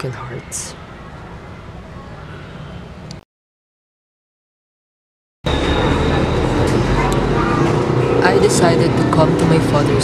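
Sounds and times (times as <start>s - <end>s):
thin high whine: 5.5s - 9.8s.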